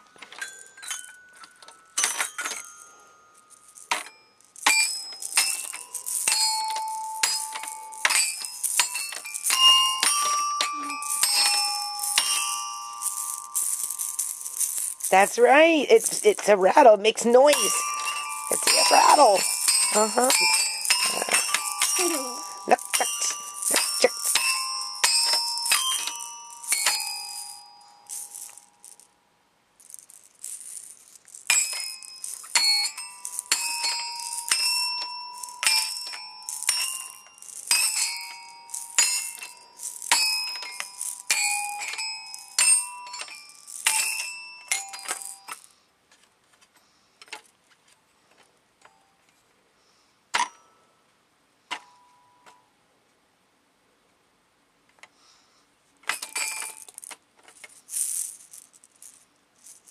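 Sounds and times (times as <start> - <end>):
toy xylophone strikes: 4.0 - 15.2, 17.4 - 28.8.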